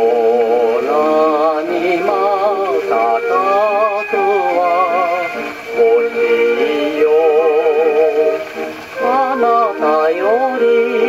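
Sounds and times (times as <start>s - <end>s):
gramophone record playing: 0.0s - 11.0s
person singing long note: 0.0s - 11.0s
orchestral accompaniment: 0.8s - 11.0s.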